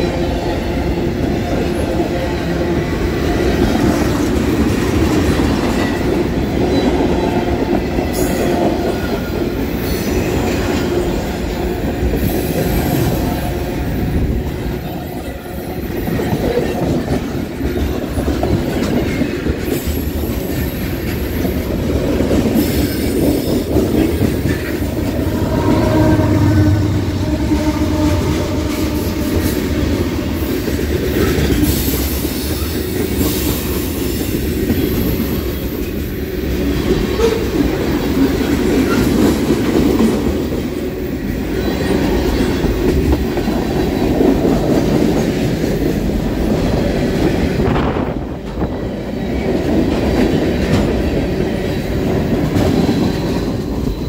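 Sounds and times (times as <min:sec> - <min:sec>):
freight train wheels rumbling on track: 0:00.0 - 0:54.0.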